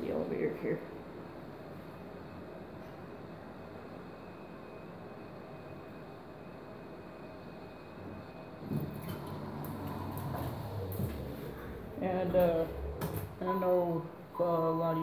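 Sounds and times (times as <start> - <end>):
hallway hum: 0.0 - 15.0
elevator doors sliding open: 8.0 - 13.8.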